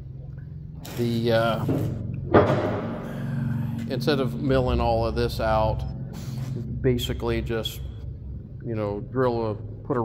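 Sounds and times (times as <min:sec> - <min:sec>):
steady low hum: 0:00.0 - 0:10.0
sudden thump: 0:02.3 - 0:03.0.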